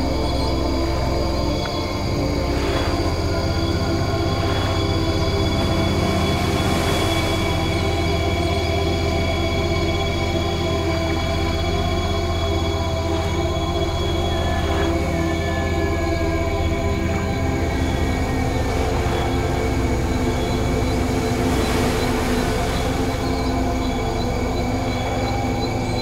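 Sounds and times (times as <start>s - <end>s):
ambient drone music: 0.0s - 26.0s.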